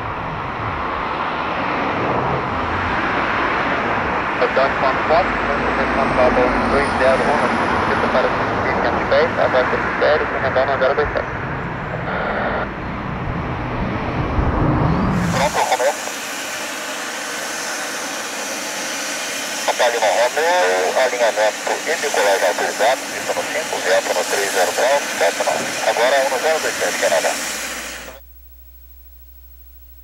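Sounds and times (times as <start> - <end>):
jet engines rumbling: 0.0 - 28.2
voices: 4.4 - 12.7, 15.1 - 16.1, 19.6 - 28.2
faint high whine: 14.8 - 30.0
steady hiss: 15.2 - 28.3.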